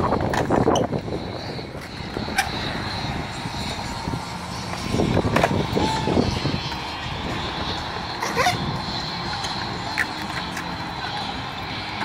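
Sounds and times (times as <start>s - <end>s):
skateboard wheels rolling on concrete: 0.0s - 12.0s
skateboards clacking on concrete: 0.1s - 1.1s, 4.6s - 6.0s, 8.1s - 12.0s.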